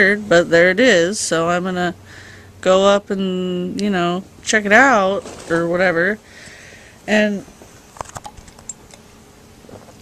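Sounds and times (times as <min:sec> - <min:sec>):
handling noise on microphone: 0:04.7 - 0:06.1, 0:09.6 - 0:10.0.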